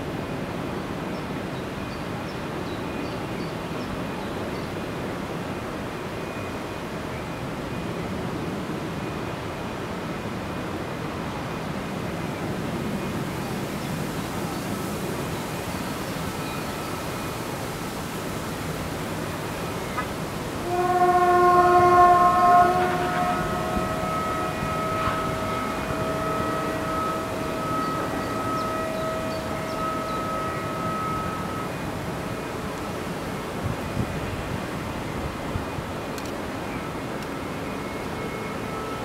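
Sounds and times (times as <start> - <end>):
distant industrial hum: 13.7 - 39.0
loud two-note horn: 20.6 - 32.8.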